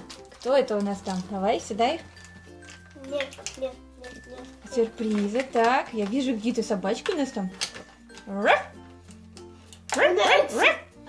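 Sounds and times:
soft background music: 0.0s - 11.0s
small dog yapping: 10.0s - 10.8s.

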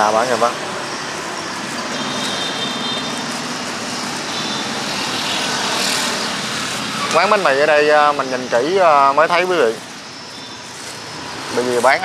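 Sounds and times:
street traffic hum: 0.0s - 12.0s.

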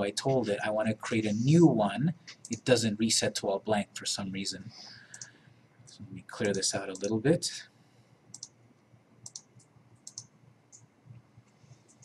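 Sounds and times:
computer mouse clicks: 2.2s - 2.7s, 5.1s - 5.4s, 6.4s - 7.1s, 8.3s - 8.6s, 9.2s - 12.0s.

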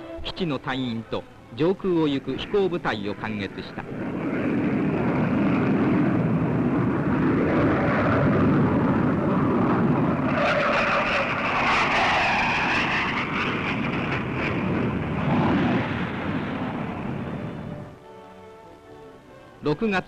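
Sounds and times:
aircraft engine noise: 0.0s - 19.3s
jet whine: 0.0s - 19.4s.

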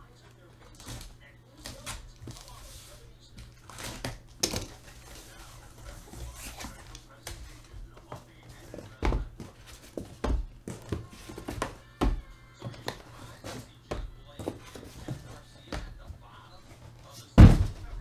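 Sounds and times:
cardboard flaps rustling and scraping: 0.7s - 11.8s
boxes thumping down: 17.4s - 18.0s.

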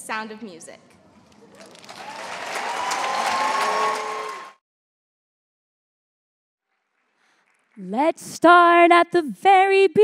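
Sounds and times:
people cheering: 1.5s - 4.6s
large audience applauding: 1.6s - 4.6s, 6.7s - 7.8s.

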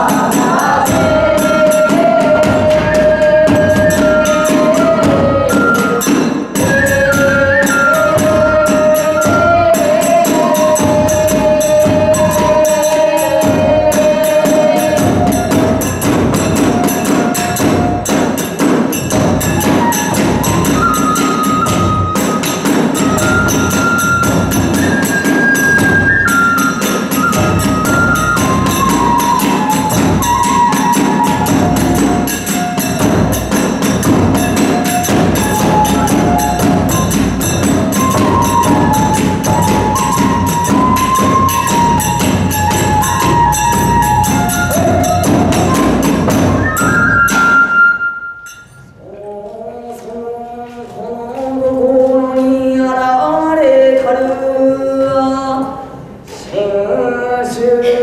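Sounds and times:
fast large drum beating: 0.0s - 47.4s
bamboo flute melody: 0.0s - 49.0s
ringing hand cymbals: 0.0s - 49.2s.

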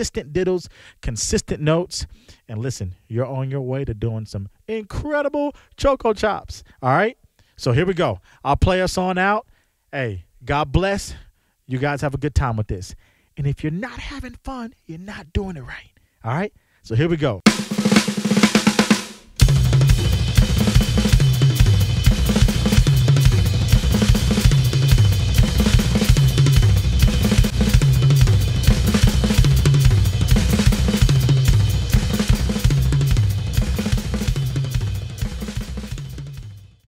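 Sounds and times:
drum kit played fast: 17.5s - 36.9s.

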